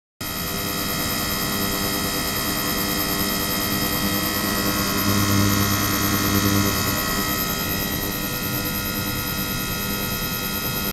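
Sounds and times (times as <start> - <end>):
high-pitched tones and whine: 0.2 - 10.9
lower hum: 0.3 - 10.8
ultrasonic cleaner hum: 0.3 - 10.9.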